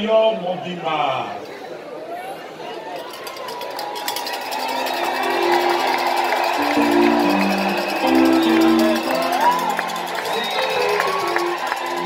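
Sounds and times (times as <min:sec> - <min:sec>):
sustained keyboard chords: 0:04.7 - 0:12.0.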